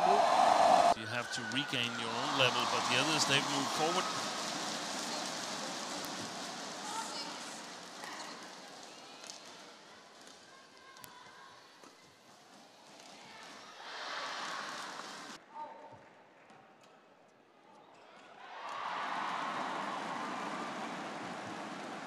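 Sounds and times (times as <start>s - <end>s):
crowd hum: 0.0s - 8.6s.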